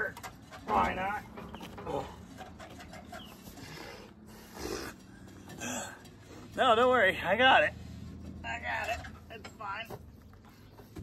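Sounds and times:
man breathing and grunting: 3.4 - 6.6.

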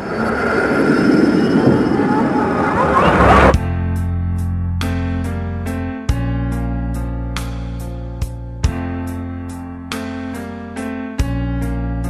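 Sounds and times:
faint high whine: 0.0 - 3.5.

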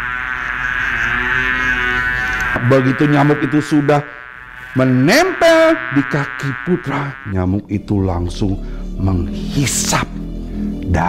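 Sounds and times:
man imitating mosquito buzz: 0.0 - 7.6.

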